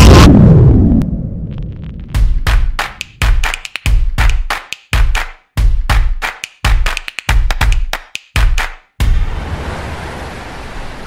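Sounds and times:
explosion-like burst with rumble: 0.0s - 2.4s, 9.0s - 11.0s.

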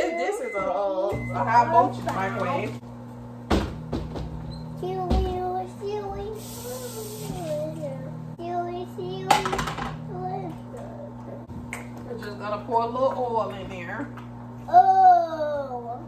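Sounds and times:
microwave oven humming: 0.0s - 16.0s
knocks and clatter: 3.5s - 4.4s
child making sliding notes: 6.4s - 8.0s.

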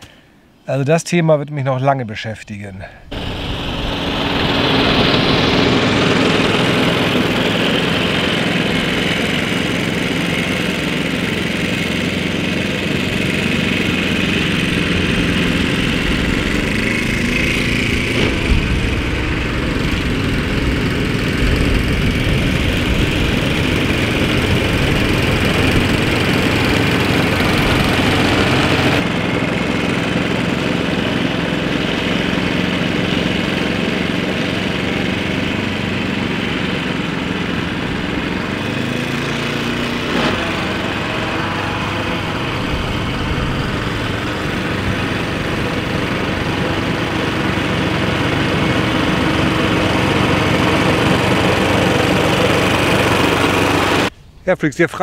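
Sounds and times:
lawn mower engine running: 3.0s - 54.2s.

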